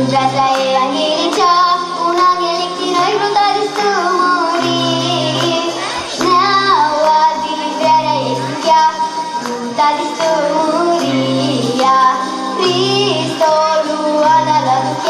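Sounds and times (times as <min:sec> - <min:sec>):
girl singing folk song: 0:00.0 - 0:15.0
instrumental accompaniment: 0:00.0 - 0:15.0.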